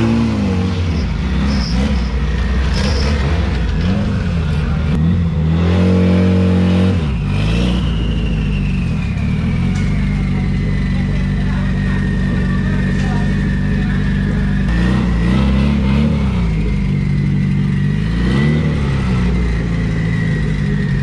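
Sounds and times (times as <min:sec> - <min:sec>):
car engine revving: 0:00.0 - 0:21.0.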